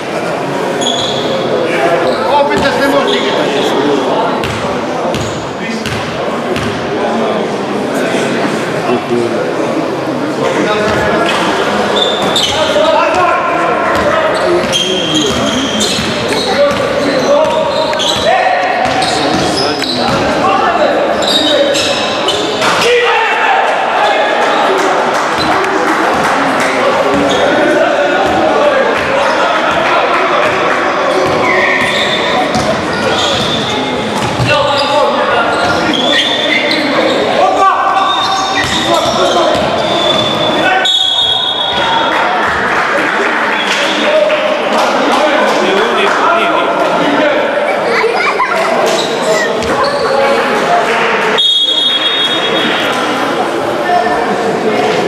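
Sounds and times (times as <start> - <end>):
basketball bouncing on court: 4.4 - 6.8, 13.9 - 20.3, 30.4 - 34.7
people calling out: 46.3 - 54.3.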